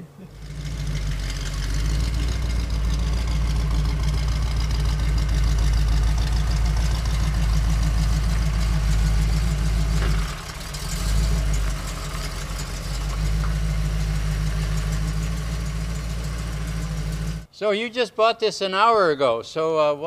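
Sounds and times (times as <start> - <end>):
car engine running and idling: 0.0 - 17.5.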